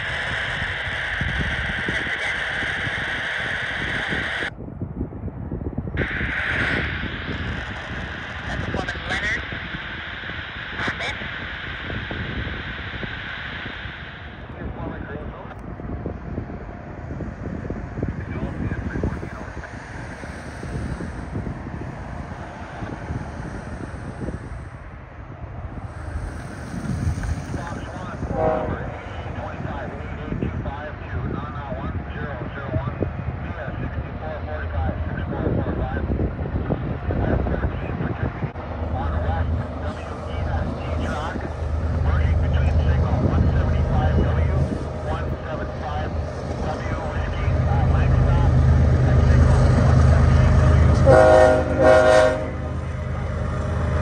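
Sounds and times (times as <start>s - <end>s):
freight train locomotives rumbling: 0.0s - 54.0s.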